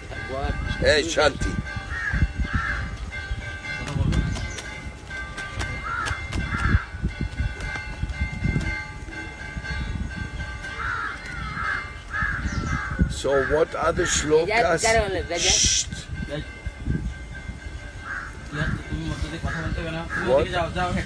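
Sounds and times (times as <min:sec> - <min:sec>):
crows cawing: 0:01.8 - 0:03.0, 0:05.8 - 0:07.1, 0:10.7 - 0:14.8, 0:18.0 - 0:20.7.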